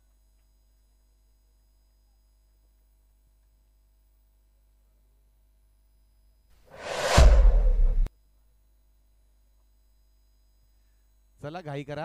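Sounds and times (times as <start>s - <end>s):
rising whoosh: 6.7s - 8.1s.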